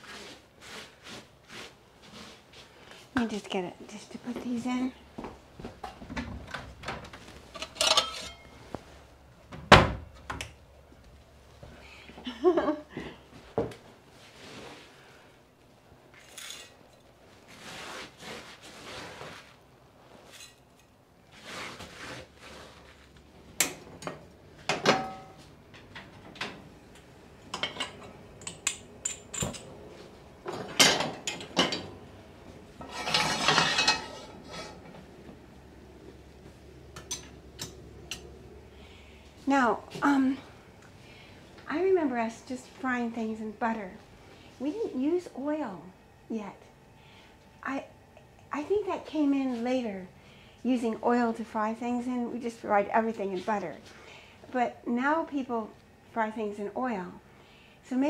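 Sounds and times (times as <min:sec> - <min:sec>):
frying pan and utensils clattering: 0:07.5 - 0:08.5, 0:23.7 - 0:25.4, 0:27.6 - 0:29.7, 0:30.5 - 0:32.0, 0:32.8 - 0:34.9.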